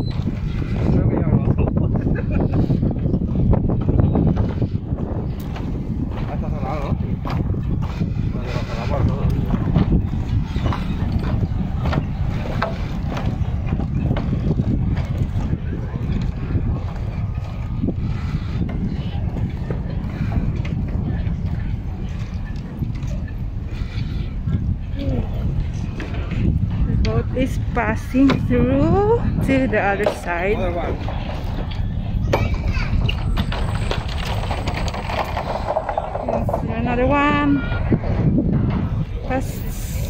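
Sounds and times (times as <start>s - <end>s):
wind buffeting microphone: 0.0s - 40.0s
people talking: 24.4s - 26.0s, 26.8s - 31.2s, 36.2s - 38.0s, 39.2s - 40.0s.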